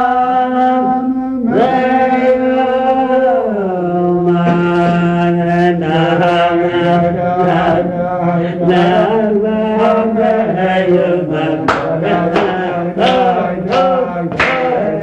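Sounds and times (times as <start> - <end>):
men chanting: 0.0 - 15.0.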